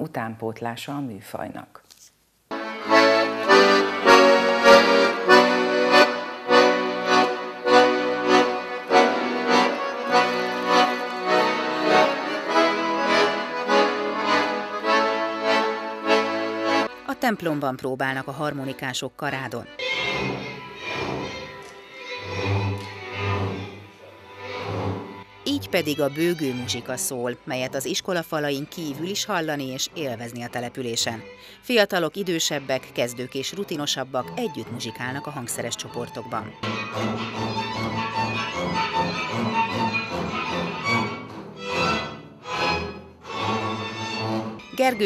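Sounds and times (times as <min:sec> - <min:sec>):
folk music group: 0:02.5 - 0:45.0.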